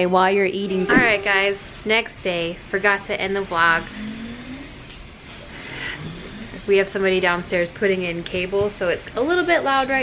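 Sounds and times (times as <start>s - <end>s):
muffled mechanical noise: 0.0s - 10.0s.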